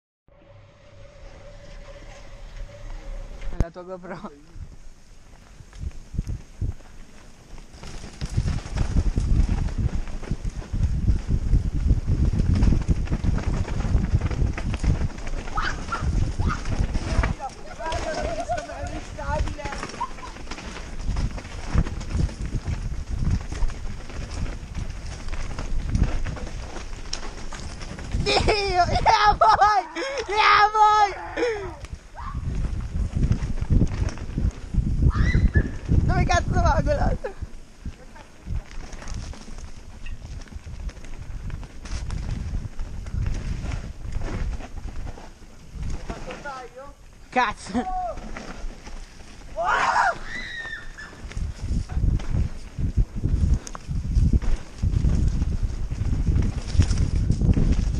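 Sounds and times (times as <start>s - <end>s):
wind buffeting microphone: 0.3s - 57.9s
bike knocking and rattling: 4.8s - 57.9s
tyres rumbling on dirt: 7.0s - 57.9s.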